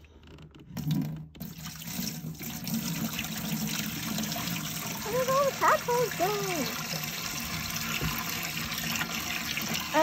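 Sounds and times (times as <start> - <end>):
water pouring into aquarium: 0.8 - 10.0.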